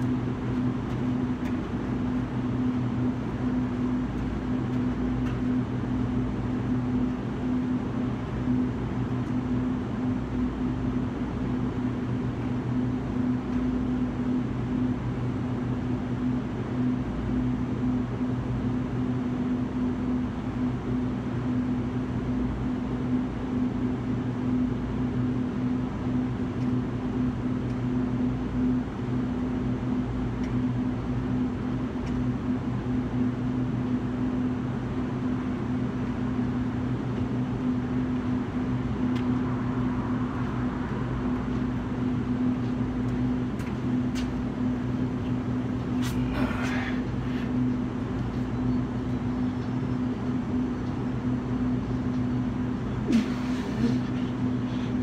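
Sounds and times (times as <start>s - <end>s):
low mechanical hum: 0.0s - 55.0s.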